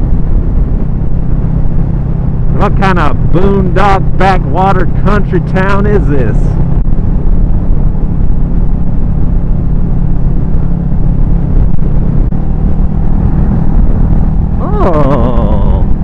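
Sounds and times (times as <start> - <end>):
motorcycle engine cruising: 0.0 - 16.0
wind and road rumble: 0.0 - 16.0.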